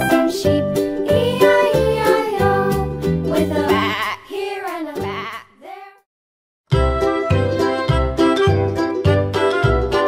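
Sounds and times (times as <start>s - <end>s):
children's background music: 0.0s - 6.0s, 6.7s - 10.0s.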